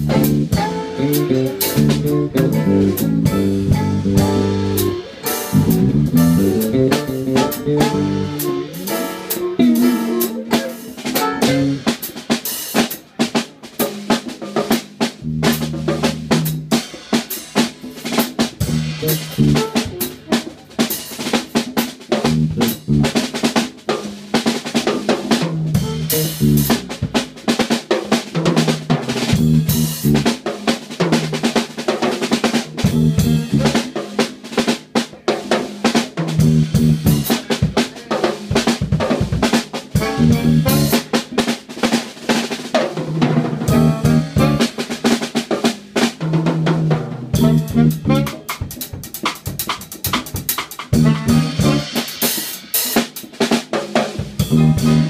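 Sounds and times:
jazz drum kit solo: 0:00.0 - 0:55.0.

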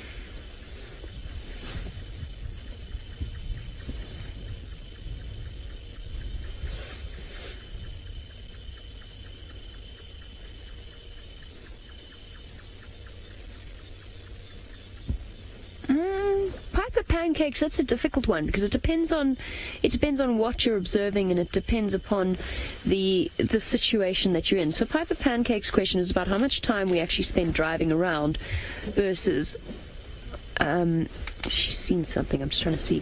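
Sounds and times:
wind rumbling on microphone: 0:00.0 - 0:08.9.

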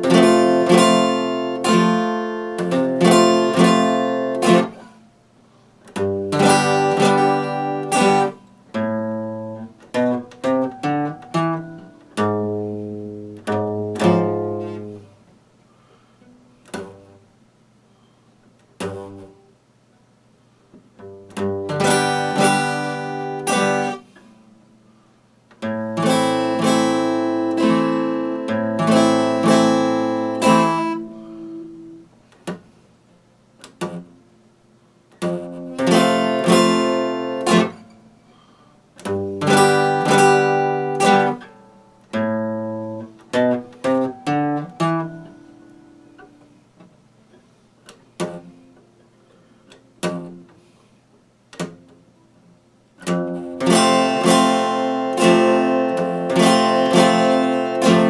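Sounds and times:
acoustic guitar chords strummed: 0:00.0 - 0:05.1, 0:05.8 - 0:15.2, 0:15.8 - 0:17.4, 0:18.8 - 0:19.5, 0:21.0 - 0:24.6, 0:25.6 - 0:32.7, 0:33.6 - 0:34.3, 0:35.1 - 0:50.7, 0:53.0 - 0:58.0.

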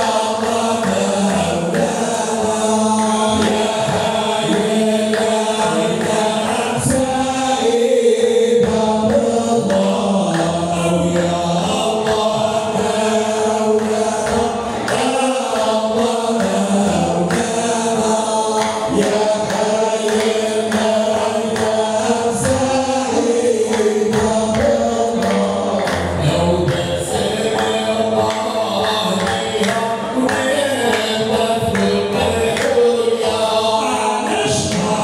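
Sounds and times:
chorus of voices chanting: 0:00.0 - 0:35.0.

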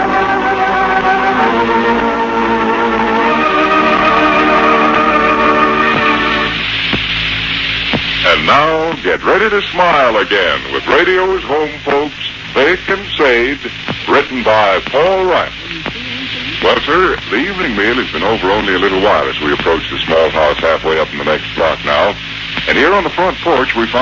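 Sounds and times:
hum and hiss: 0:00.0 - 0:24.0
radio broadcast speech: 0:07.8 - 0:24.0.

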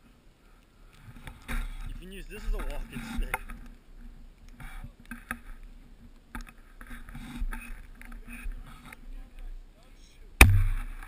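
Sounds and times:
sharp knocks: 0:10.4 - 0:11.0.

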